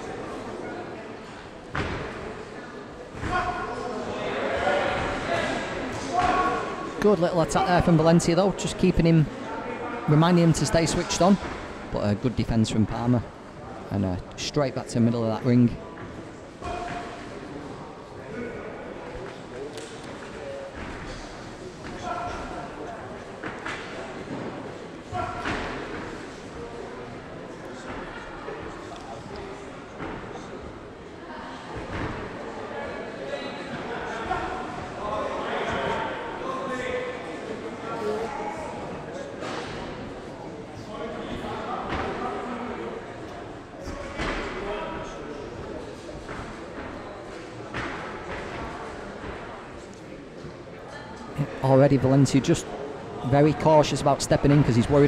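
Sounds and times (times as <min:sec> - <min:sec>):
indistinct crowd voices: 0:00.0 - 0:55.0.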